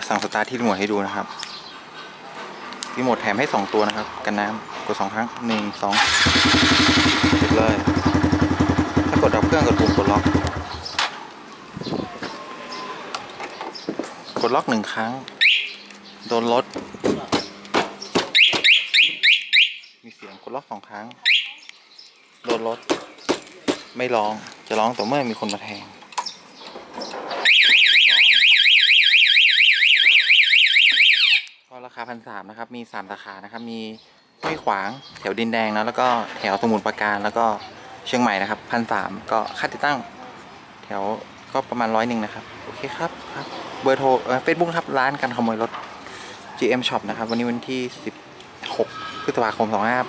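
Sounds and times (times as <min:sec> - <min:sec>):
motorcycle engine starting and idling: 0:05.9 - 0:11.2
motorcycle alarm siren wailing: 0:15.4 - 0:15.8, 0:18.4 - 0:19.8, 0:21.2 - 0:21.6, 0:27.4 - 0:31.6.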